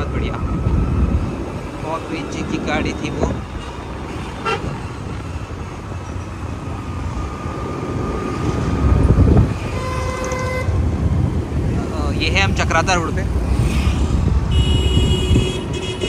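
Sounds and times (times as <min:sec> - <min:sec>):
wind and road rumble: 0:00.0 - 0:16.0
vehicle horn honking: 0:09.7 - 0:10.7, 0:14.5 - 0:16.0.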